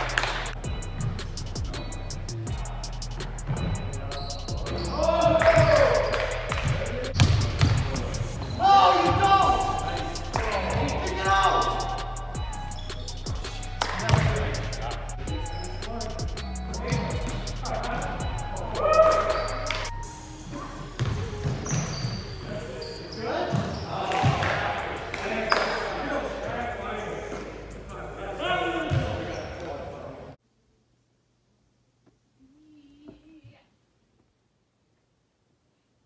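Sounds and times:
music with a beat: 0.0 - 8.4, 9.1 - 21.6
voices: 1.8 - 30.3
basketball bouncing on wooden floor: 6.5 - 9.2, 21.0 - 22.2.

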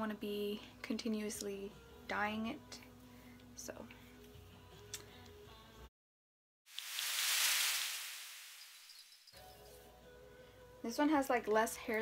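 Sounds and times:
hissy whoosh transition effect: 6.8 - 9.0.

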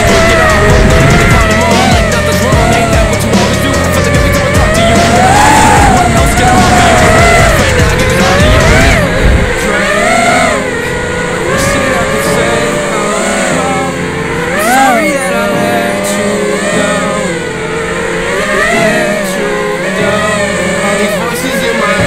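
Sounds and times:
background music: 0.0 - 22.0
drone motors whining: 0.0 - 22.0.

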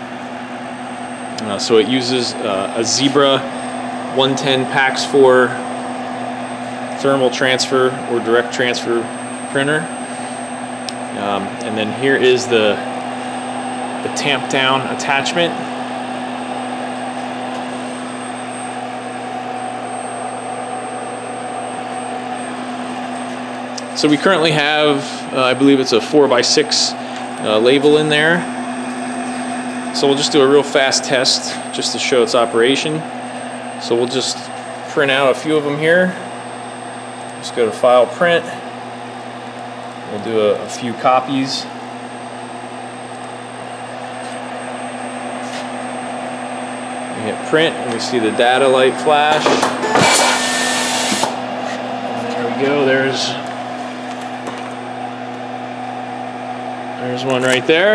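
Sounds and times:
electric machine hum: 0.0 - 57.9
label applicator machine whirring: 47.2 - 54.8.

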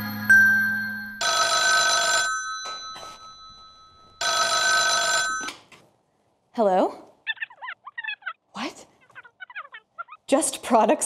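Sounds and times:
telephone bell ringing: 0.0 - 5.7.

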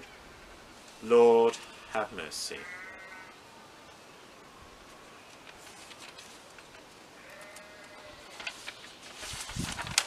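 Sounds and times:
sheep bleat: 1.7 - 3.4, 7.2 - 8.4.

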